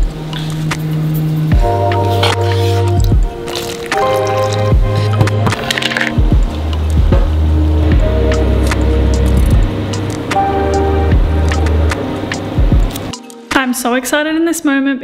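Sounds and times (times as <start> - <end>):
background music with beat: 0.0 - 13.6.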